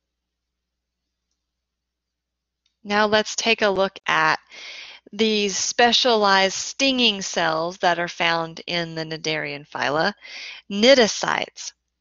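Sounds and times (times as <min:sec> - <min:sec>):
woman speaking: 0:02.9 - 0:11.7.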